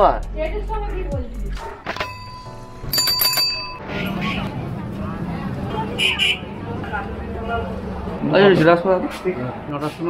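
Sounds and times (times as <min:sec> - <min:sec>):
bicycle bell ringing: 0:01.9 - 0:03.8.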